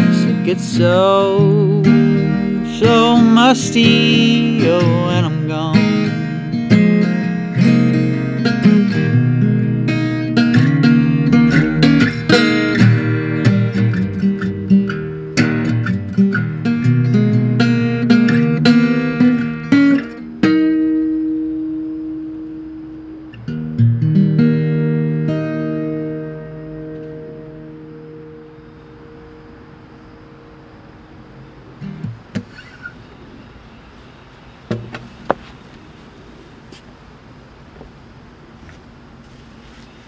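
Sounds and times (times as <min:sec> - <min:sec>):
acoustic guitar strumming: 0:00.0 - 0:36.0.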